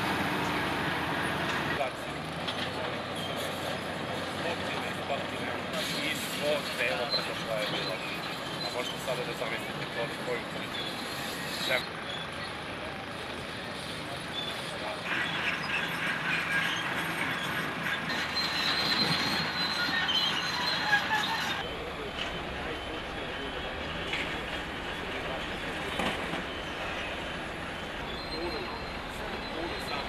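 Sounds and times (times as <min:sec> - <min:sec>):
heavy machinery rumble: 0:00.0 - 0:30.0
metallic squeals and scraping: 0:04.6 - 0:12.4, 0:14.3 - 0:30.0.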